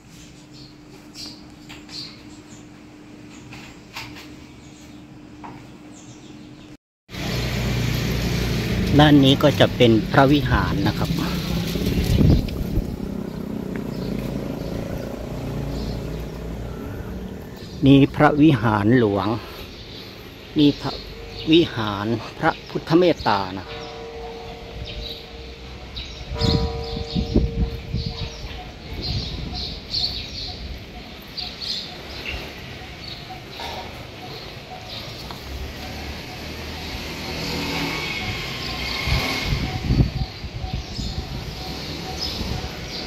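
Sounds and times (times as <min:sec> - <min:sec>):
street traffic rumble: 0:07.1 - 0:43.0
low rumbling bumps: 0:08.0 - 0:18.8.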